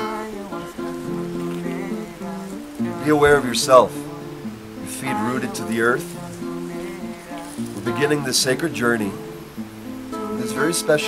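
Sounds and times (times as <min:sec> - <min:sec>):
slow acoustic guitar notes: 0:00.0 - 0:11.0.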